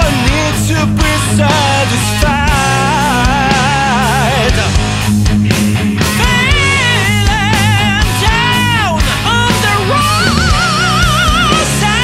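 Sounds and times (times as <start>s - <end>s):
hard rock band playing: 0.0s - 12.0s.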